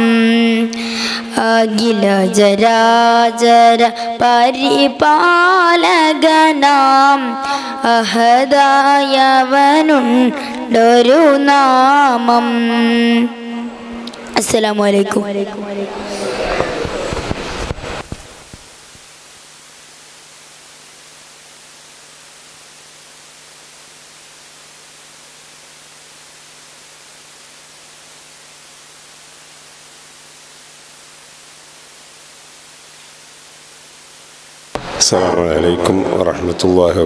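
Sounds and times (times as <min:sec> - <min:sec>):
electronic hiss: 0:00.0 - 0:01.9, 0:13.6 - 0:37.0.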